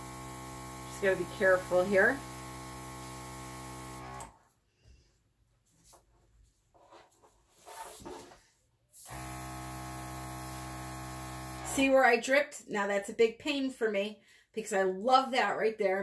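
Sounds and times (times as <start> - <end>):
airbrush compressor humming: 0.0 - 4.3, 9.0 - 11.8.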